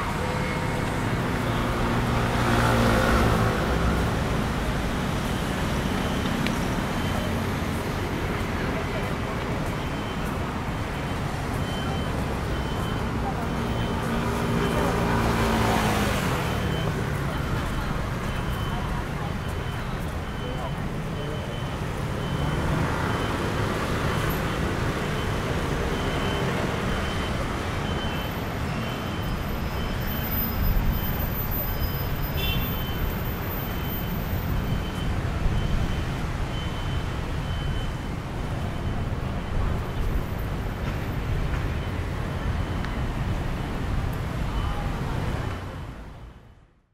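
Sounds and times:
road traffic rumble: 0:00.0 - 0:46.9
faint high beep: 0:05.2 - 0:41.0, 0:44.5 - 0:45.6.

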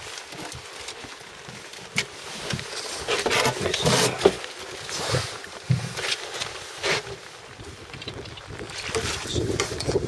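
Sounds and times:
water sloshing against boat: 0:00.0 - 0:10.0
wind buffeting microphone: 0:07.5 - 0:10.0.

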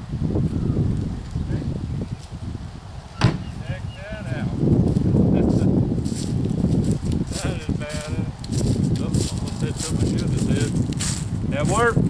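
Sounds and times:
wind rumble on microphone: 0:00.0 - 0:12.0
footsteps through dry leaves: 0:04.5 - 0:12.0.

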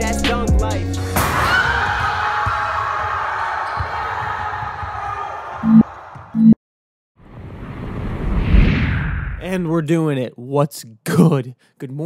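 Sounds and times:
rising whoosh effect: 0:07.5 - 0:09.5.

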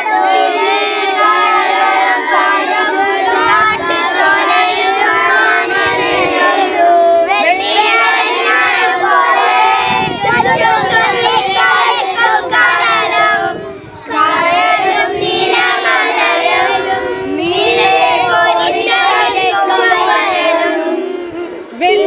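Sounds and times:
young children singing in chorus: 0:00.0 - 0:22.0.

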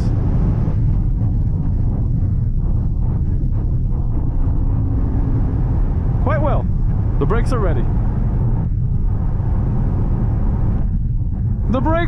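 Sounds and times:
wind and tyre noise in car cabin: 0:00.0 - 0:12.0.

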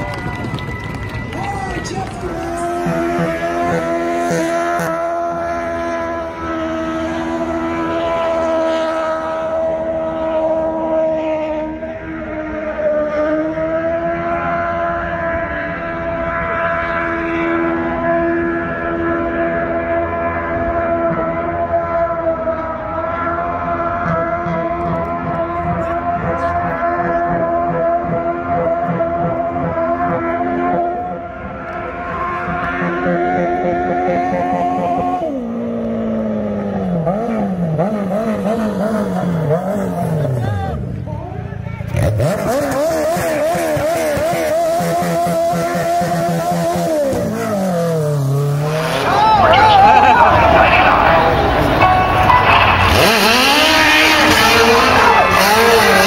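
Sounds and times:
car engine at high revs: 0:00.0 - 0:56.0.

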